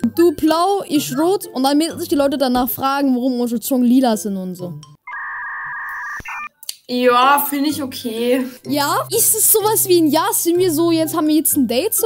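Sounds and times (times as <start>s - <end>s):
electronic tone: 5.0s - 6.5s.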